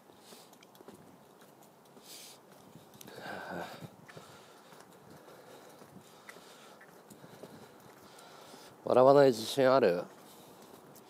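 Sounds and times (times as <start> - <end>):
faint background noise: 0.0 - 11.0
light ticks: 0.1 - 3.2, 3.8 - 8.8, 9.4 - 11.0
man speaking: 8.8 - 10.1.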